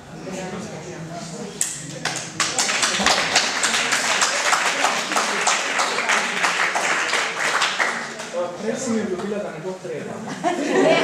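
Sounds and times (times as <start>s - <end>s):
audience applauding: 2.0s - 8.5s.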